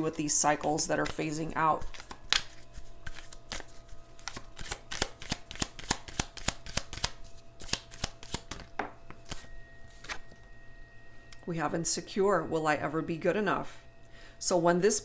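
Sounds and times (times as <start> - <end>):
cards being shuffled: 0.9 - 10.2.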